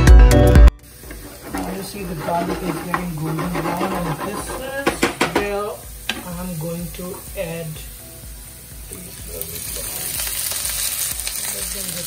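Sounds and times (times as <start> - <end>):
background music: 0.0 - 12.0
garlic sizzling in oil: 0.8 - 12.0.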